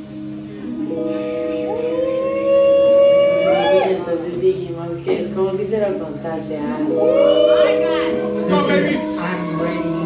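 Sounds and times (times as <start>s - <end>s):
steady low backing tone: 0.0s - 10.0s
woman singing a long note: 0.6s - 4.5s, 6.6s - 10.0s.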